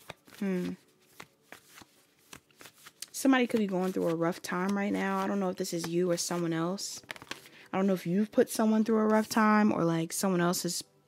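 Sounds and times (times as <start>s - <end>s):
cards clicking and flicking: 0.0s - 6.4s, 7.0s - 7.5s.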